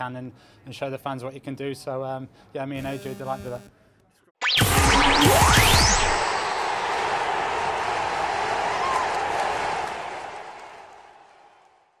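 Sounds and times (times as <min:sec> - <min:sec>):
rising whoosh: 0:04.4 - 0:08.3.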